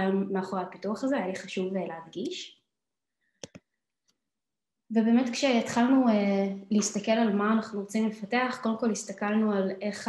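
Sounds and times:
computer mouse clicks: 0:03.4 - 0:04.2.

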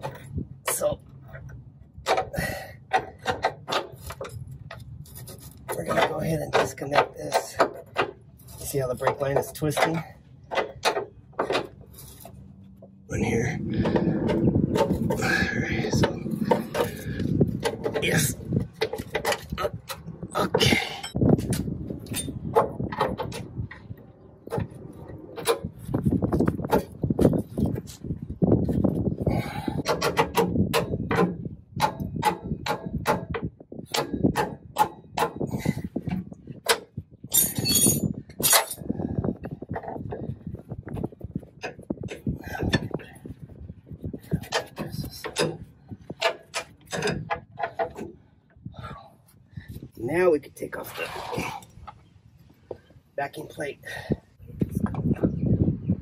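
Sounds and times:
wrench and metal parts clinking: 0:20.6 - 0:23.4, 0:36.7 - 0:38.9.

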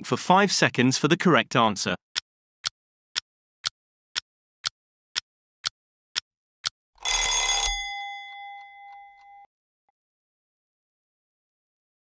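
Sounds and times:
bright bell-like ring: 0:07.0 - 0:09.5.

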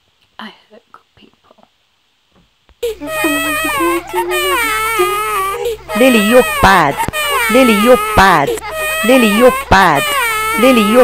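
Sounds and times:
high-pitched voice crying out: 0:02.9 - 0:11.0.

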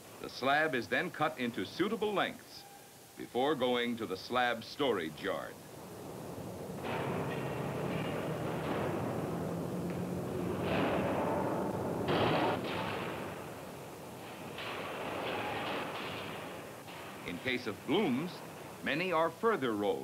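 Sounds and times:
industrial machinery rumbling and hissing: 0:05.0 - 0:19.5.

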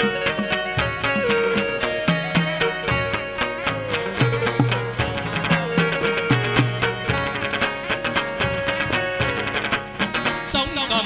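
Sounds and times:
steady percussion strokes: 0:00.0 - 0:10.4
plucked moon lute: 0:00.0 - 0:10.6.

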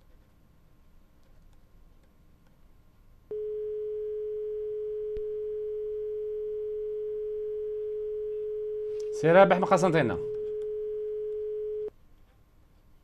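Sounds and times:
telephone dial tone: 0:03.3 - 0:09.2, 0:10.2 - 0:11.9.

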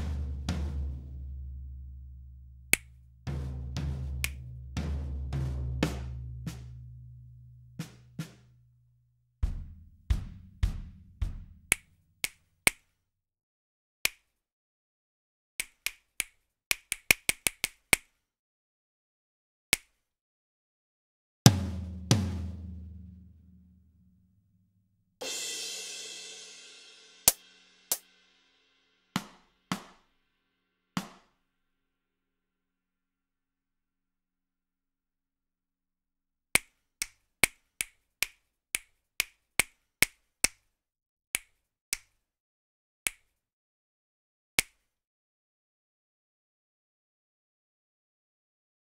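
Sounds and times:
snappy percussion hits: 0:09.4 - 0:11.9.

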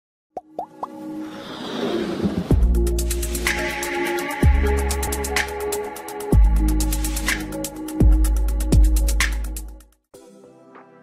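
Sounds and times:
synthesized music: 0:00.5 - 0:11.0.

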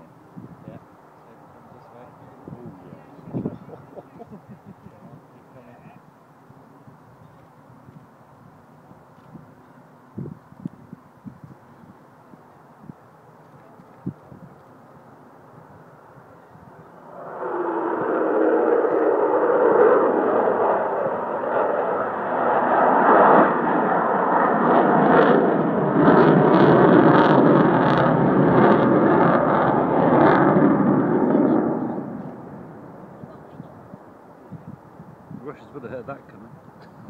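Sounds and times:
jet aircraft passing over: 0:15.1 - 0:36.3.

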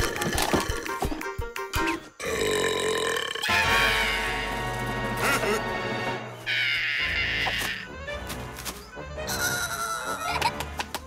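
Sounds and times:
background music: 0:00.0 - 0:11.0
cartoon hyena burping: 0:02.2 - 0:03.6.

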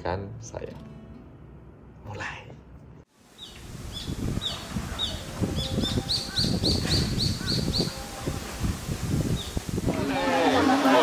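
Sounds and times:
small bird chirping: 0:03.4 - 0:08.0.

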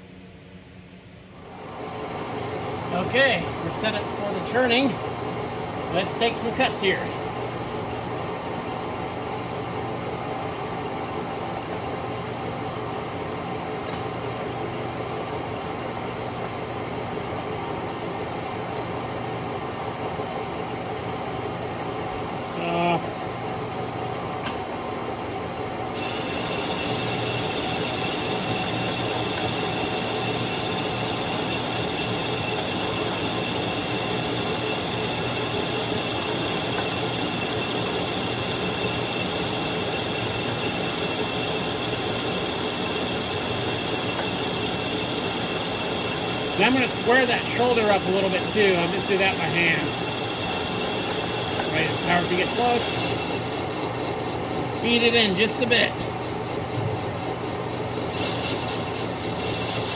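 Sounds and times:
high steady whine: 0:00.0 - 0:12.9, 0:13.9 - 0:59.9
metal lathe running: 0:01.4 - 0:59.9.

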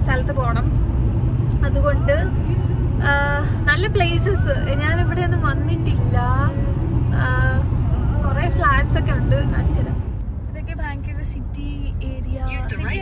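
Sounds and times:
car road and engine rumble: 0:00.0 - 0:13.0
woman talking: 0:08.3 - 0:13.0.

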